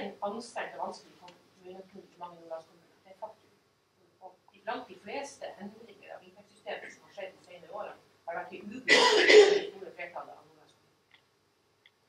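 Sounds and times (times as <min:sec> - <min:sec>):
person coughing: 0:08.8 - 0:09.8.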